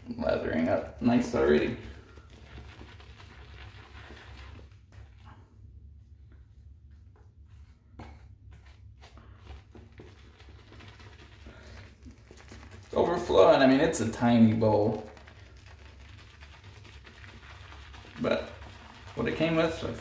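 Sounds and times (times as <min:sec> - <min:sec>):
shaving brush swishing in soap: 0:00.0 - 0:05.4, 0:07.5 - 0:20.0.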